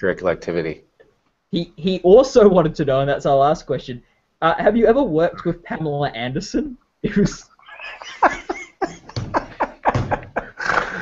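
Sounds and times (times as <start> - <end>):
hearty laughter: 7.1 - 11.0.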